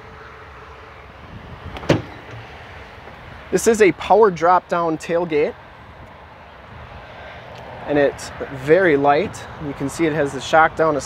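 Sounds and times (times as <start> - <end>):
tailgate latch clunk: 1.7 - 2.5.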